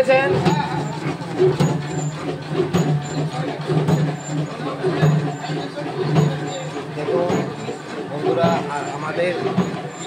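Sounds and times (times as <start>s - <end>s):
indistinct voices: 0.0s - 10.0s
machine motor humming: 0.0s - 10.0s.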